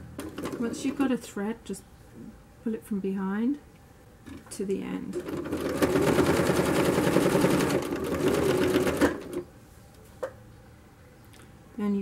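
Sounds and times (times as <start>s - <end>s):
sewing machine stitching: 5.1s - 9.4s.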